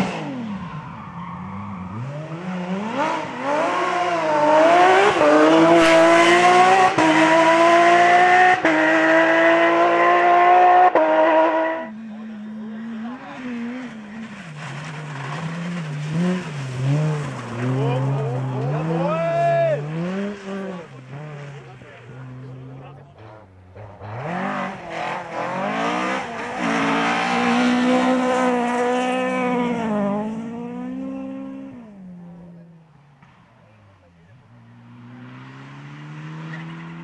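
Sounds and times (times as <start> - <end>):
rally car engines revving: 0.0 - 37.0.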